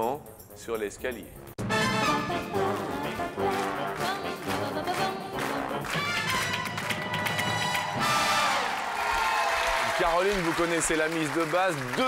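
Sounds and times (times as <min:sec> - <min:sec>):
upbeat game-show jingle with brass: 0:01.4 - 0:12.0
audience cheering and applauding: 0:03.5 - 0:12.0.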